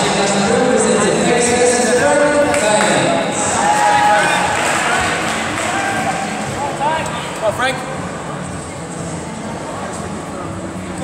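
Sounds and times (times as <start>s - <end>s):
echoing chatter of voices: 0.0s - 11.0s.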